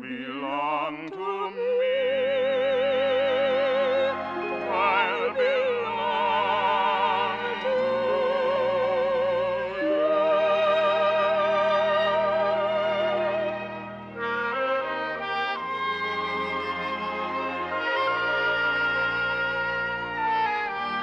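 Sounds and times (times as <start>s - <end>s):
brass playing sustained chords: 3.9s - 21.0s.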